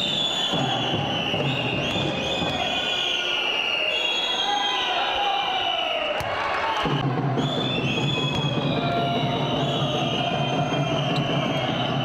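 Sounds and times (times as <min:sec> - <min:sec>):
crowd whistling: 0:00.0 - 0:12.0
crowd din: 0:06.2 - 0:12.0.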